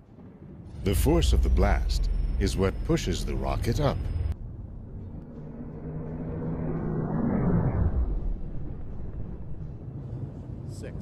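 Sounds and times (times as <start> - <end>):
rocket engine rumble: 0.0 - 11.0.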